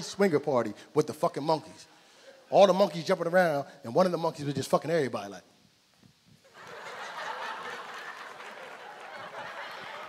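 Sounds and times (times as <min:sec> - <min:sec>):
audience laughing: 0:06.5 - 0:10.0.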